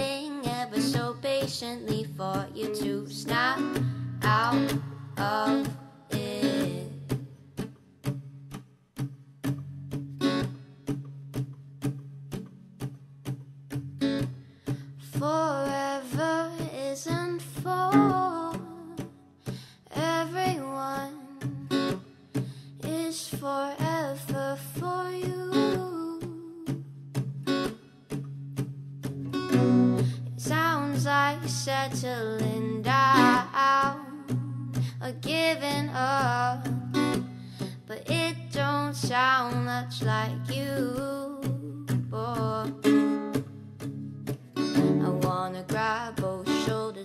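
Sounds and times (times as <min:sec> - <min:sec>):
acoustic guitar strumming: 0:00.0 - 0:47.0.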